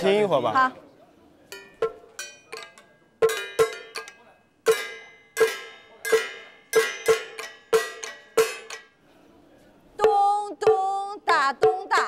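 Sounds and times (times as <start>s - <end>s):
bell-like percussion hits: 1.6s - 4.1s, 4.7s - 8.9s.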